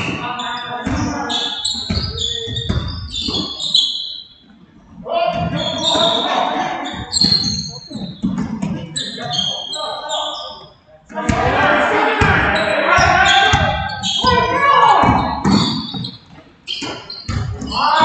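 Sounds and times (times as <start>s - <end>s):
people calling out: 0.0s - 3.8s, 5.0s - 16.0s, 17.6s - 18.0s
sneakers squeaking on court: 0.0s - 4.5s, 5.3s - 11.5s, 12.4s - 18.0s
basketball bouncing on hardwood: 15.0s - 16.2s, 17.3s - 17.7s.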